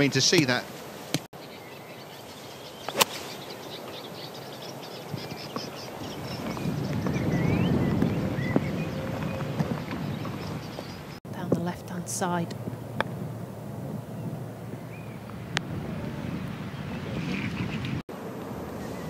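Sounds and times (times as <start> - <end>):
birds chirping: 0.0 - 18.0
golf club striking ball: 2.9 - 3.4.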